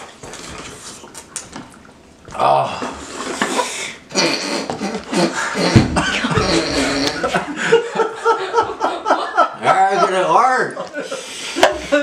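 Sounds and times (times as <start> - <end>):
men's muffled groans: 2.3 - 3.0, 4.1 - 7.6
men laughing: 4.8 - 12.0.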